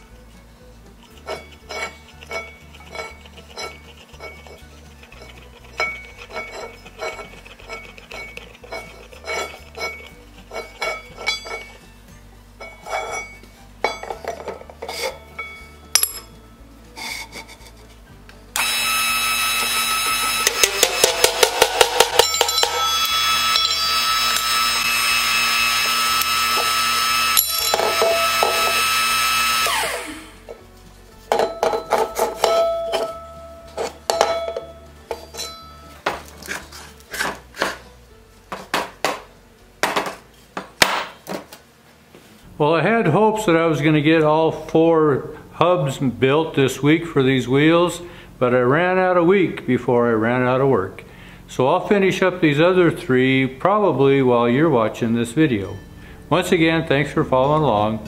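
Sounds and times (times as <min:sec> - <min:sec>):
metal parts knocking and clinking: 0:05.2 - 0:11.8, 0:12.6 - 0:16.4, 0:20.4 - 0:24.6, 0:27.4 - 0:28.8
motor falling whine: 0:18.5 - 0:21.8, 0:22.7 - 0:30.6
motor-driven press running: 0:18.6 - 0:30.3.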